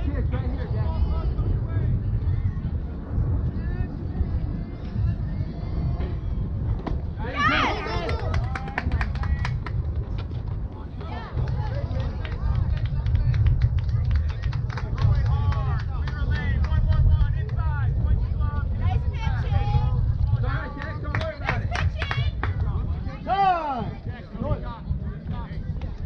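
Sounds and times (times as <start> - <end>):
steady low rumble: 0.0 - 26.0
spectators shouting and cheering: 4.0 - 9.5.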